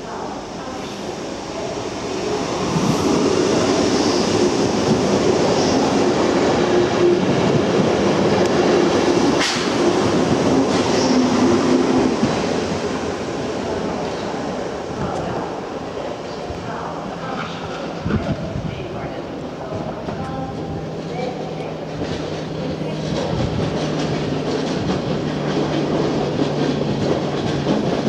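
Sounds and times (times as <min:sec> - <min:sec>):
train wheels rolling: 0:01.6 - 0:18.7, 0:19.3 - 0:28.0.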